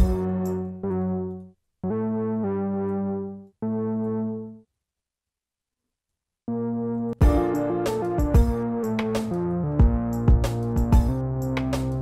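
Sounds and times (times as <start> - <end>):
synthesizer melody: 0.0 - 4.6, 6.5 - 12.0.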